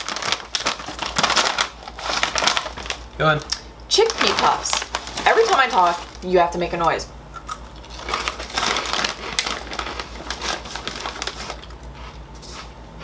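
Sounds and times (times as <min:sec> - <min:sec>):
snack bag rustling: 0:00.0 - 0:06.4, 0:07.7 - 0:12.0.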